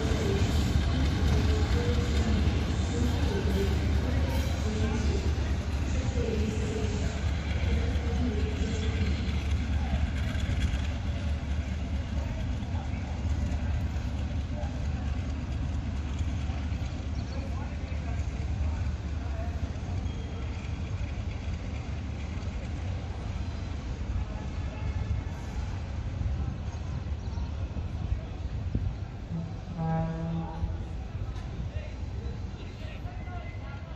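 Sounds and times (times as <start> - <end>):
diesel locomotive engine rumble: 0.0 - 33.9.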